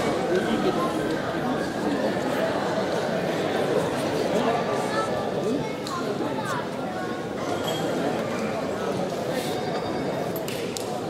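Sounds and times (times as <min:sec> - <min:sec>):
murmur of many voices: 0:00.0 - 0:11.0.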